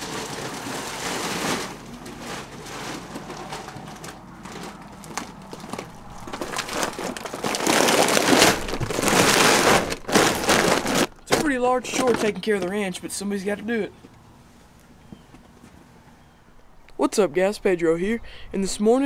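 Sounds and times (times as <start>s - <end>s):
rustling on microphone: 0.7s - 12.7s.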